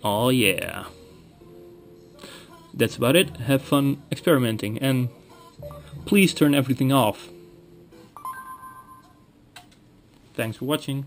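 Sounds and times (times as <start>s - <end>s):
short electronic beep tones: 5.6s - 6.0s, 8.2s - 9.3s.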